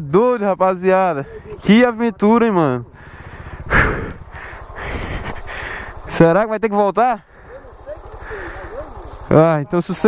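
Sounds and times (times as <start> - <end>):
low pulsing rumble: 0.6 - 6.3
person exhaling hard: 3.0 - 6.0.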